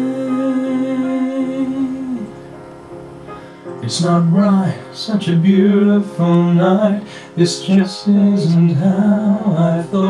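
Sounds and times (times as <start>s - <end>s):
man singing a long note: 0.0s - 2.4s, 3.8s - 10.0s
backing music: 0.0s - 10.0s.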